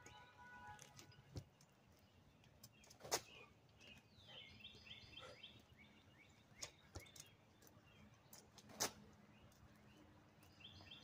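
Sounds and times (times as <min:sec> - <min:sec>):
faint birds chirping: 0:00.0 - 0:11.0.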